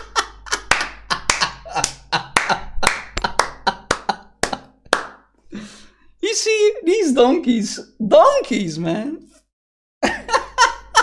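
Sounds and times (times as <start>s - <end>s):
man laughing: 0.0s - 4.8s, 10.0s - 11.0s
hands clapping: 0.6s - 5.3s.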